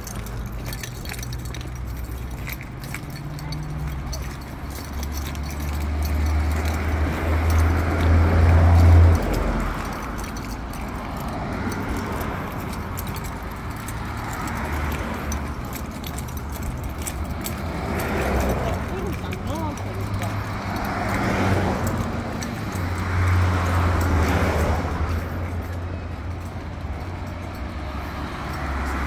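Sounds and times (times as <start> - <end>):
cars passing: 0.0 - 29.0.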